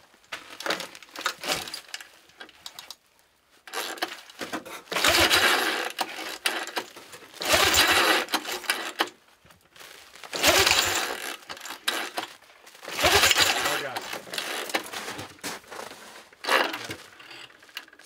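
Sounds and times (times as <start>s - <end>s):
engine spinning over: 10.4s - 11.2s, 12.9s - 13.8s
recoil pull-starter yanked: 12.9s - 14.9s.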